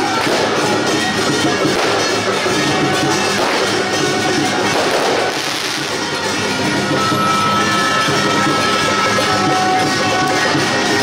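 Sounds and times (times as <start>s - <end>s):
firecrackers crackling: 0.0s - 11.0s
procession music with wind instruments: 0.0s - 11.0s.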